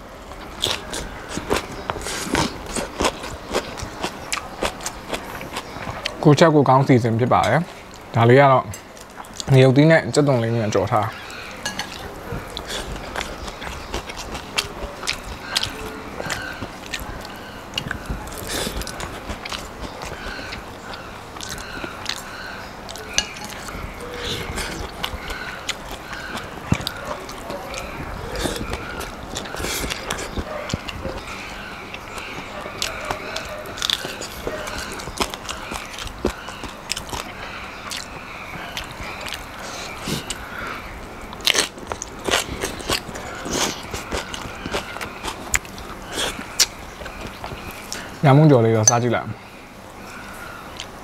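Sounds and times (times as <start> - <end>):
person chewing food: 0.3 - 6.2, 9.0 - 9.5, 11.1 - 48.2, 50.7 - 51.0
mouth clicks and smacks: 11.9 - 40.5.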